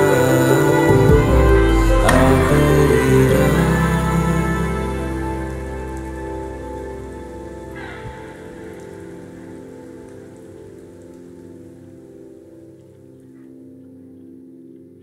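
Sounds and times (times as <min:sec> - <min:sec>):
sustained music chord: 0:00.0 - 0:11.9
rain falling: 0:00.0 - 0:13.4.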